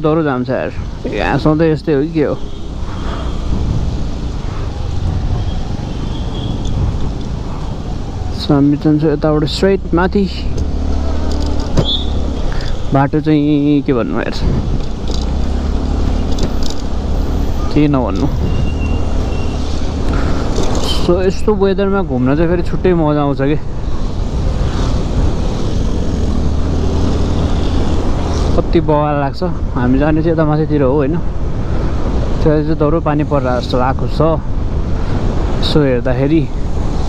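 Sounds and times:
person's voice: 0.0s - 2.4s, 17.7s - 18.4s
motorcycle engine and road rumble: 0.0s - 37.0s.

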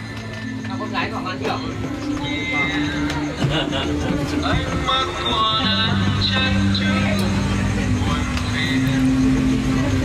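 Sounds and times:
background music with low notes: 0.0s - 10.0s
people talking: 0.2s - 10.0s.

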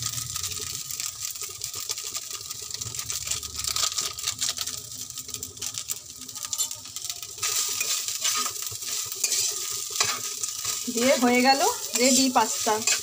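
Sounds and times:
food sizzling in a frying pan: 0.0s - 13.0s
metal spatula scraping a pan: 6.5s - 13.0s.

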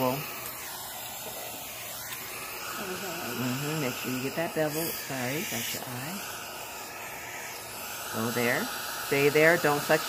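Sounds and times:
suction device hissing: 0.0s - 10.0s.

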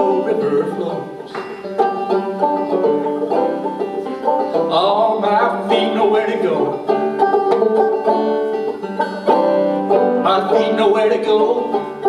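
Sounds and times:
person singing: 0.0s - 1.4s, 4.7s - 6.8s, 10.2s - 12.0s
banjo picking: 0.0s - 12.0s.

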